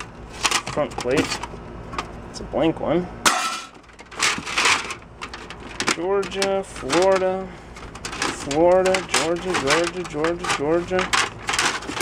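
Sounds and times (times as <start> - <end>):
metal plates scraping and clattering: 3.3 - 12.0.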